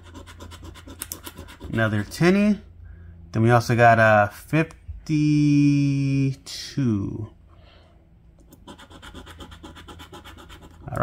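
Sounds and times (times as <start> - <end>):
coin scratching lottery ticket: 0.0 - 2.2, 8.5 - 11.0.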